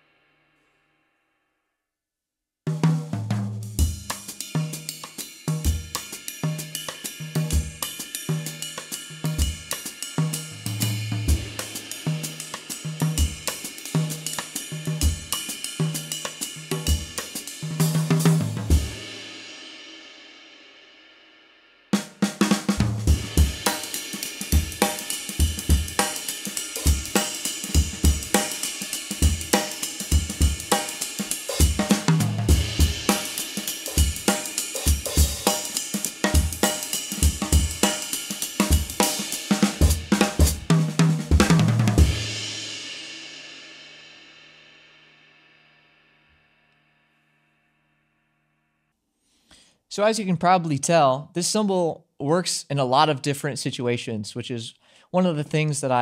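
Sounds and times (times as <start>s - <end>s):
jazz drum kit playing: 2.7s - 19.4s, 22.0s - 43.3s.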